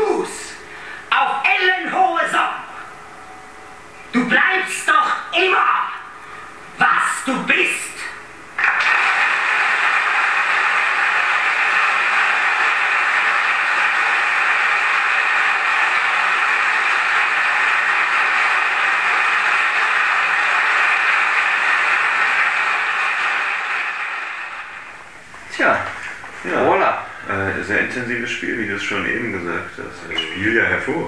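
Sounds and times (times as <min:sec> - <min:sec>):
audience applauding: 0:08.6 - 0:25.2.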